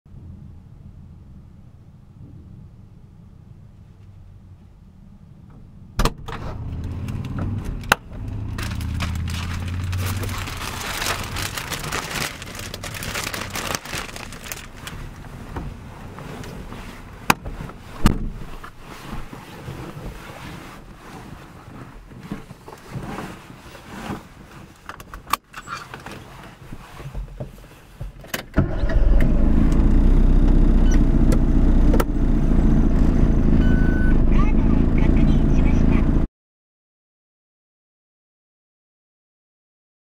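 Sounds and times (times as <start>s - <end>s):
car engine hum: 0.1s - 20.0s, 28.6s - 36.3s
crackly plastic rustling: 8.1s - 25.2s
sharp clicks inside a car: 30.4s - 32.1s.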